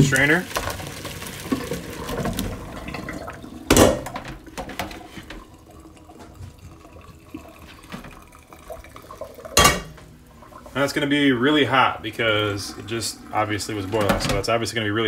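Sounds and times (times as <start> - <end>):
water splashing into a colander: 0.0 - 10.2, 13.3 - 14.6
water trickling and dripping: 0.0 - 15.0.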